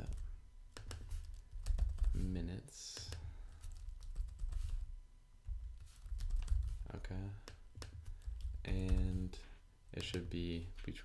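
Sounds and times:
typing on computer keyboard: 0:00.8 - 0:02.1.

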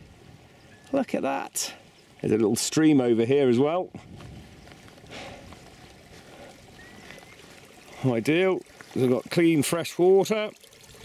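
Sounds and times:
stream trickling over stones: 0:04.4 - 0:11.0.

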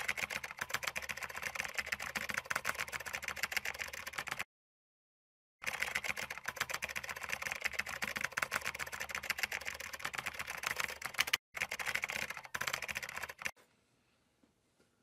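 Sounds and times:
fast typing on laptop keyboard: 0:00.0 - 0:04.5, 0:05.6 - 0:13.6.

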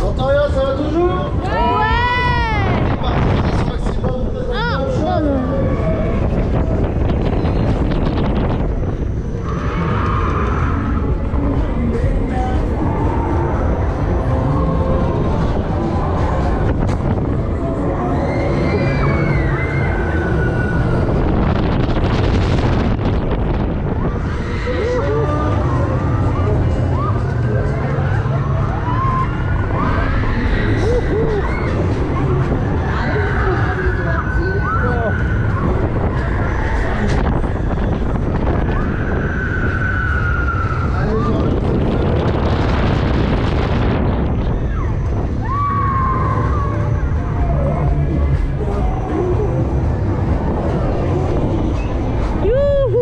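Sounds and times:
rumble of wind and machinery: 0:00.0 - 0:53.0
riders crying out: 0:24.0 - 0:27.4, 0:28.6 - 0:37.2.

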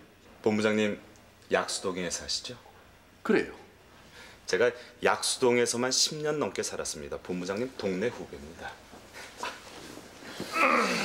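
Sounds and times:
man's falling wordless vocal sound: 0:10.4 - 0:11.0.

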